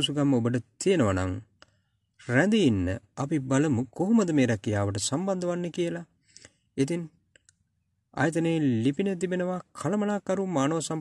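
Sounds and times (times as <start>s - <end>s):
person speaking: 0.0s - 7.5s, 8.2s - 11.0s
faint clicks: 7.3s - 7.7s.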